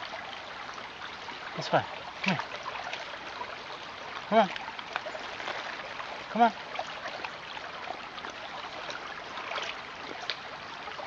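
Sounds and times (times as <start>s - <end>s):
creek water babbling: 0.0s - 11.0s
dog wading through water: 0.0s - 11.0s.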